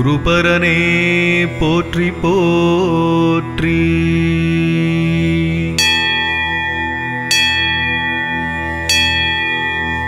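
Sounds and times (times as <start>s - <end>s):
steady drone: 0.0s - 10.0s
bell ringing: 5.8s - 10.0s.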